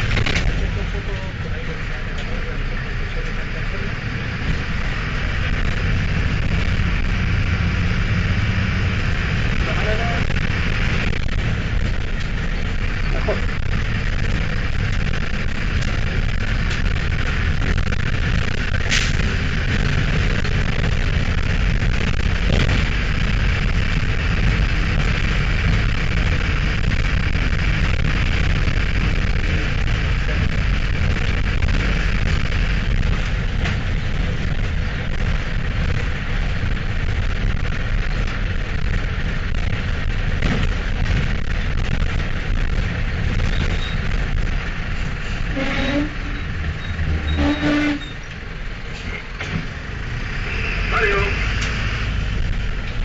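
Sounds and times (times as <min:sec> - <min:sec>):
diesel bus engine running: 0:00.0 - 0:53.0
road and body noise: 0:00.0 - 0:53.0.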